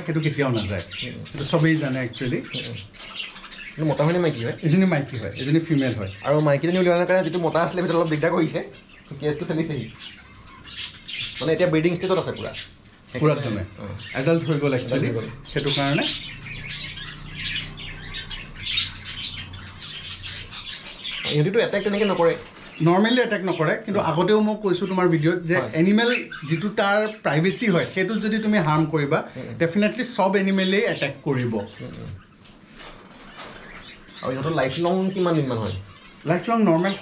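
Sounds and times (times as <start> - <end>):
man talking: 0.0 - 2.9, 3.8 - 10.0, 11.4 - 16.3, 21.2 - 32.2, 34.2 - 37.0
caged birds squawking and chirping: 0.0 - 37.0.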